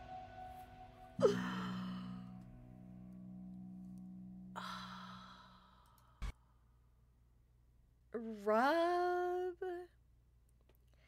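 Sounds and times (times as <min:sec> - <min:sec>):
low music note: 0:00.0 - 0:05.3
woman sighing: 0:01.2 - 0:02.4, 0:04.5 - 0:06.3.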